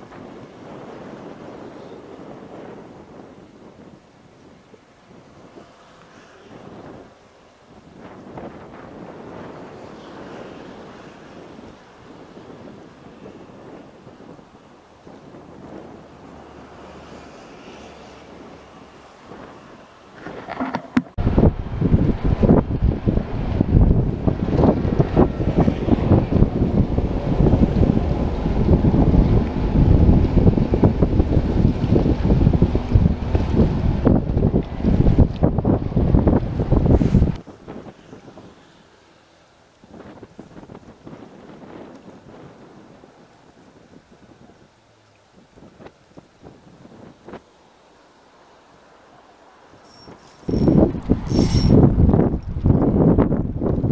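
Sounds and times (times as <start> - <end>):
wind buffeting microphone: 0.0 - 38.8, 39.8 - 47.5, 49.7 - 53.9
faint wind noise: 0.0 - 53.9.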